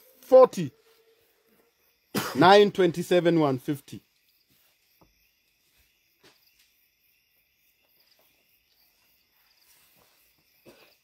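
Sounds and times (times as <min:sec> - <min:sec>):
high-pitched insect chirping: 0:00.0 - 0:11.0.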